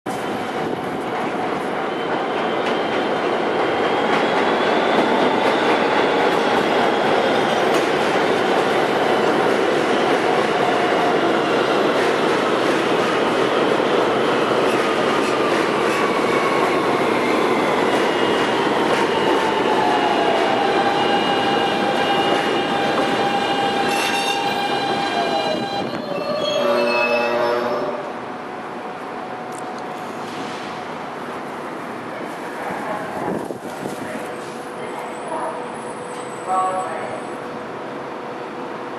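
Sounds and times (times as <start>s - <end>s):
train wheels rumbling on rail: 0.1s - 38.9s.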